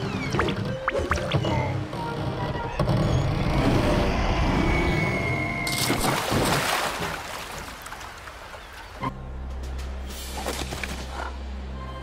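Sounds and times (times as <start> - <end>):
splash into water: 5.7 - 8.8.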